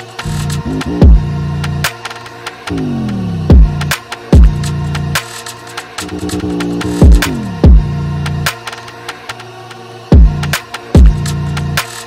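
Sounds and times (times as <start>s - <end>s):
held bass note: 0.6s - 1.4s, 2.7s - 3.8s, 6.0s - 7.9s.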